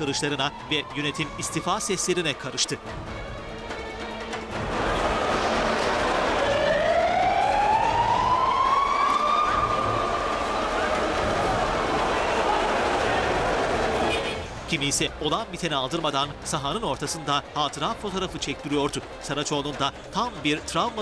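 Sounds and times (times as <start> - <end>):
fire engine siren wailing: 0.0 - 2.9, 4.6 - 14.1
stadium crowd shouting: 4.3 - 8.0, 9.1 - 14.4.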